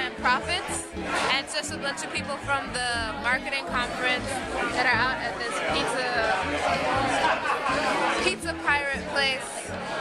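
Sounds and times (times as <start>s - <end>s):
background music: 0.0s - 10.0s
voices chattering: 0.0s - 10.0s.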